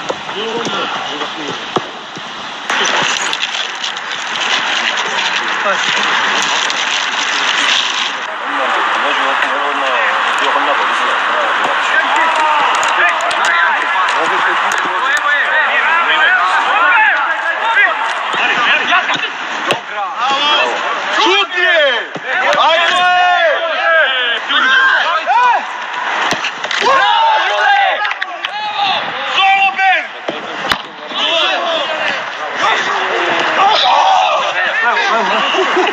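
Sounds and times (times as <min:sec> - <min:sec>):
men talking over one another: 0:00.0 - 0:35.9
men shouting: 0:08.3 - 0:19.3, 0:20.0 - 0:25.8, 0:26.8 - 0:30.1, 0:31.2 - 0:35.9.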